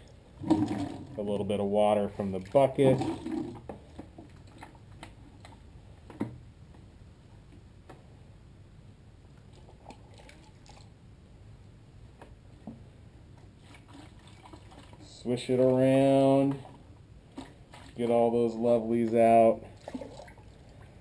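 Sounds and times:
water dripping and sloshing: 0:00.0 - 0:06.3, 0:09.4 - 0:11.0, 0:13.4 - 0:21.0.

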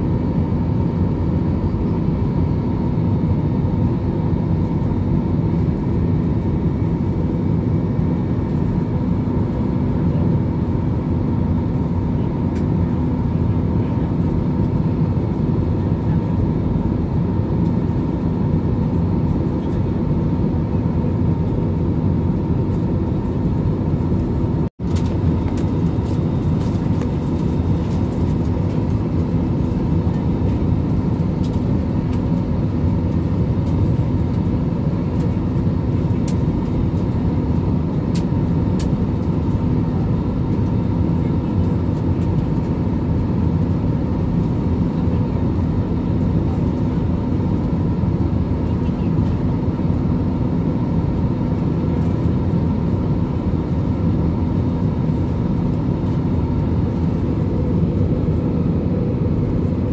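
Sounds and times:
airliner cabin drone: 0:00.0 - 0:59.9.

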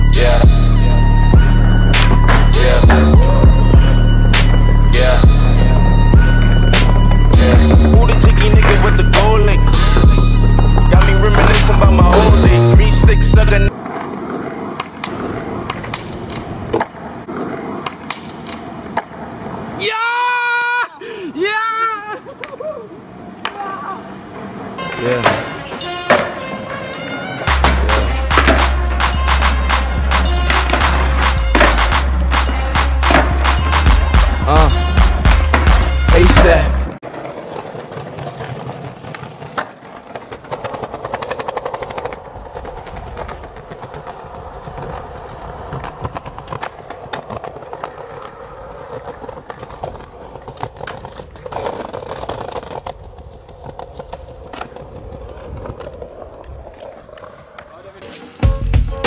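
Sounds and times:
skateboard wheels rolling on paving: 0:00.0 - 0:59.0
skateboard tail cracking on ground: 0:13.7 - 0:19.8, 0:37.0 - 0:58.4.

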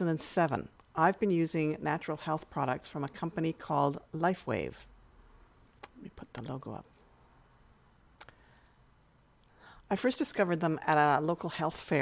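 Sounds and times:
person speaking: 0:00.0 - 0:04.8, 0:05.8 - 0:07.1
computer mouse click: 0:08.2 - 0:08.8
person breathing in: 0:09.5 - 0:09.9.

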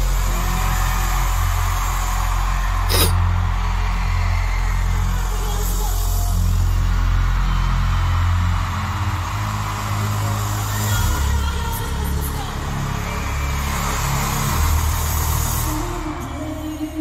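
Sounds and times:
crowd noise: 0:00.0 - 0:17.0.

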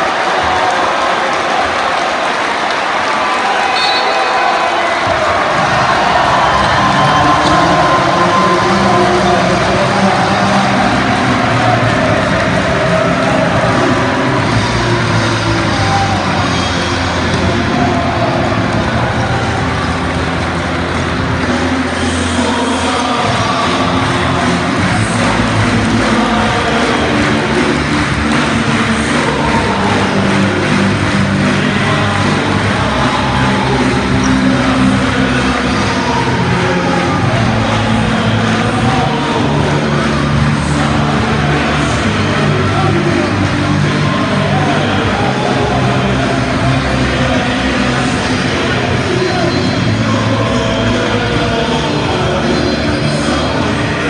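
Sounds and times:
crowd cheering and chanting: 0:00.0 - 0:54.0.

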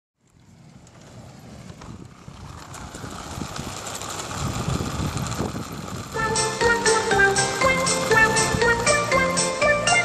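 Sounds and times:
rough rumbling noise: 0:00.2 - 0:10.0.

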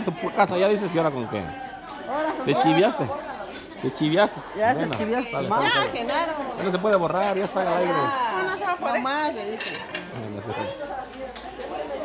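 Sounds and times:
kitchenware clatter: 0:09.5 - 0:10.6.

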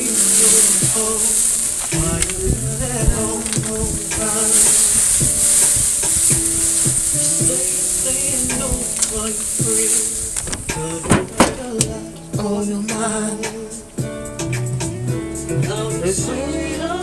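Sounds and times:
burger patties sizzling on grill: 0:00.0 - 0:10.4
water squirting from bottle: 0:00.0 - 0:11.7
background music: 0:00.0 - 0:17.0.

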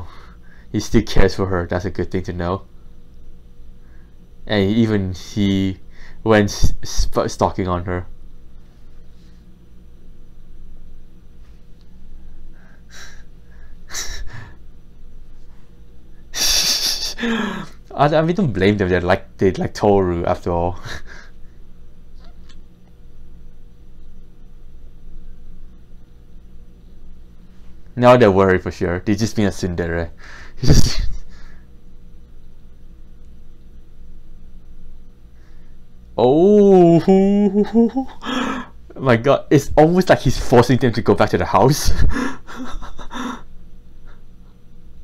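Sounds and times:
steady low hum: 0:00.0 - 0:45.0
man's stifled laugh: 0:16.4 - 0:17.8, 0:30.6 - 0:31.3, 0:36.7 - 0:38.8, 0:41.8 - 0:44.3.

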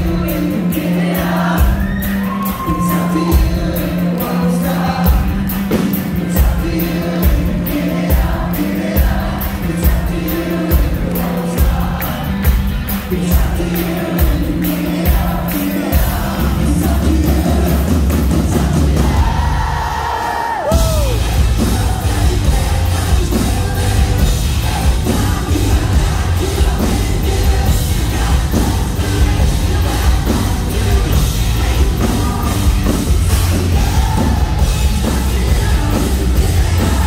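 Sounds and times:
man singing: 0:00.0 - 0:12.3, 0:12.9 - 0:37.0
live rock band playing: 0:00.0 - 0:37.0.

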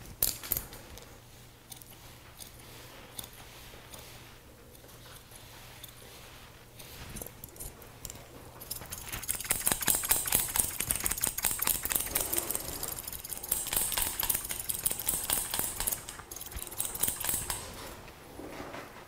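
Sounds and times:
scissors snipping hair: 0:01.7 - 0:04.1, 0:07.2 - 0:17.8.

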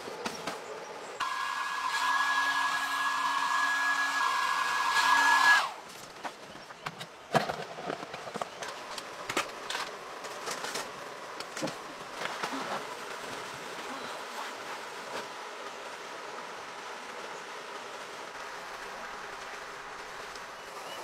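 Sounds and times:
electric fan motor whirring: 0:01.2 - 0:05.8.

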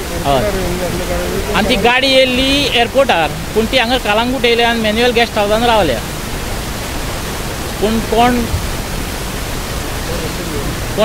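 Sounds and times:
faint murmur: 0:00.0 - 0:04.5, 0:09.8 - 0:11.0
man's voice: 0:00.0 - 0:06.1, 0:07.8 - 0:08.6
steady background hiss: 0:00.0 - 0:11.0.

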